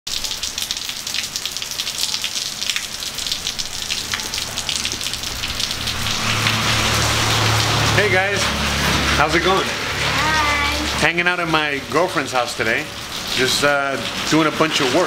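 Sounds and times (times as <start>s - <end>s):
rain pattering on hard surfaces: 0.1s - 15.0s
low steady rumble: 2.8s - 9.4s.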